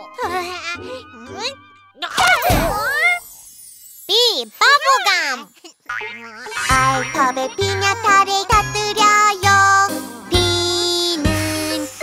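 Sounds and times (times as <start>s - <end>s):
light background music: 0.0s - 2.8s.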